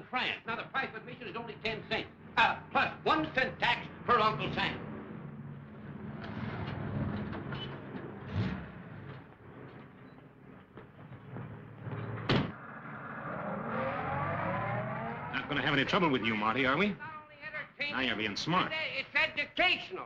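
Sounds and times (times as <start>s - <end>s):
old film soundtrack hum: 0.0s - 20.0s.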